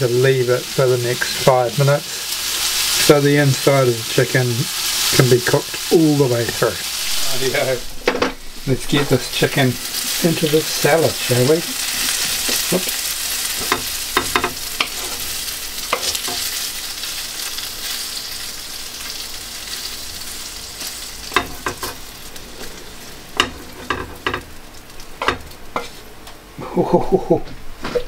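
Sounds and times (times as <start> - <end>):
chicken sizzling in a frying pan: 0.0 - 27.0
spatula scraping a pan: 11.7 - 16.6, 25.3 - 26.1.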